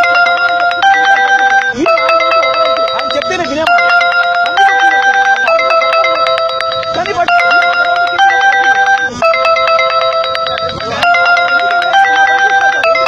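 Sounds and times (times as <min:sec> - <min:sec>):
fast ticking pulse: 0:00.0 - 0:13.0
held synth chords: 0:00.0 - 0:13.0.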